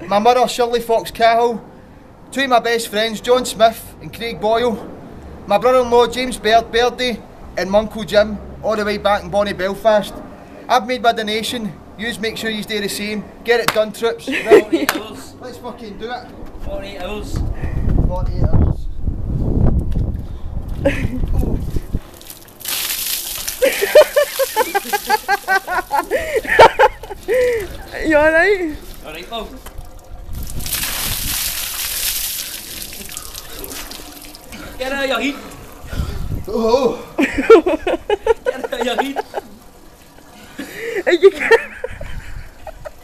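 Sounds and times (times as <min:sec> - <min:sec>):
man laughing: 0:14.2 - 0:15.2, 0:20.8 - 0:21.6, 0:23.6 - 0:27.9, 0:36.6 - 0:39.6, 0:40.4 - 0:43.0
water splashing: 0:22.0 - 0:35.9
man crying out: 0:36.5 - 0:37.2.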